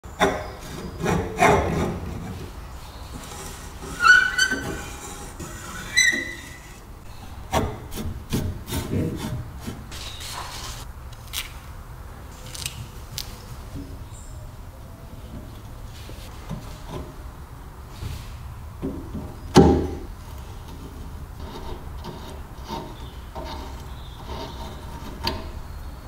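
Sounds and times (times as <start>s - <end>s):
rusty slicer grating and scraping: 0.1s - 10.9s, 18.1s - 26.0s.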